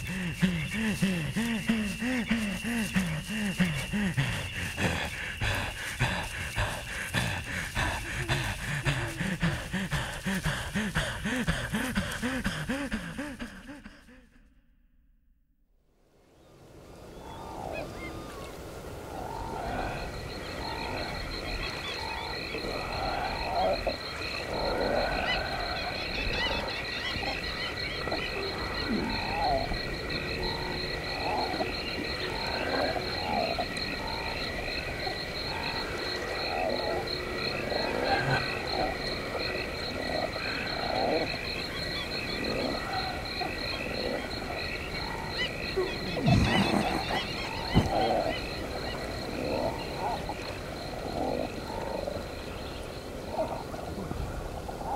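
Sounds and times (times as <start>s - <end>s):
frogs croaking: 0.0s - 14.5s, 16.0s - 54.9s.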